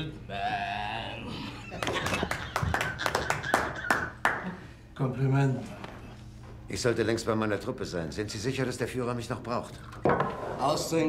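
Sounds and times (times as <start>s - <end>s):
hands clapping: 1.8s - 4.6s.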